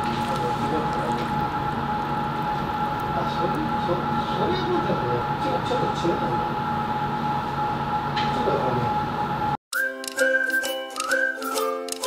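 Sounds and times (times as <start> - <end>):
mechanical hum with high tones: 0.0 - 9.6.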